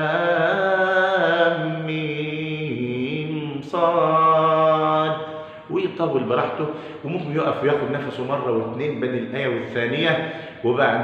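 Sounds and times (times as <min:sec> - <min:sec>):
man chanting recitation: 0:00.0 - 0:11.0.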